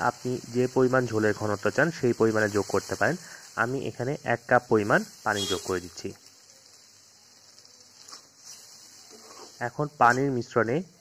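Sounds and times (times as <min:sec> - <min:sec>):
curry simmering hiss: 0:00.0 - 0:11.0.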